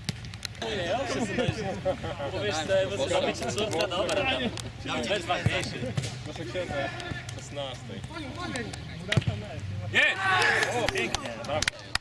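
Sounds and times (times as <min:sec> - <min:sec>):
loud shout: 0:09.9 - 0:11.2
men calling out: 0:09.9 - 0:11.4.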